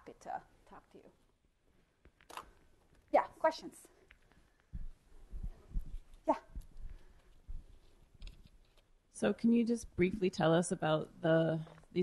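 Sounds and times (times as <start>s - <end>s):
soft low thumps: 4.7s - 7.8s.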